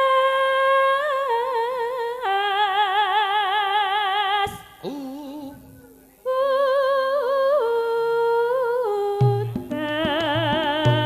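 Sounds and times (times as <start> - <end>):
woman singing held notes with vibrato: 0.0 - 11.0
drum strokes: 9.2 - 11.0.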